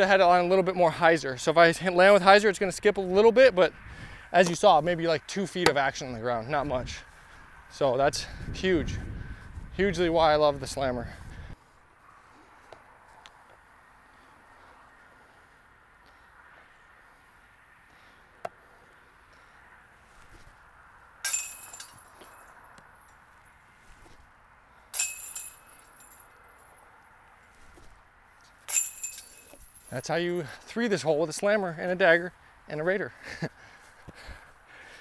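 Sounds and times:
metal chains jingling: 21.2 - 22.6, 25.0 - 26.8, 28.7 - 30.1.

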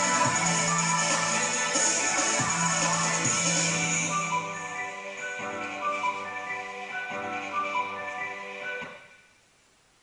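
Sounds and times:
music with repeating melody: 0.0 - 9.2.

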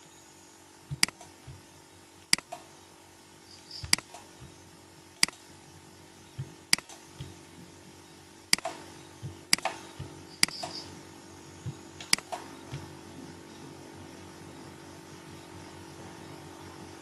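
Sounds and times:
low steady hum: 0.0 - 17.0
computer mouse button clicking: 10.4 - 10.8.

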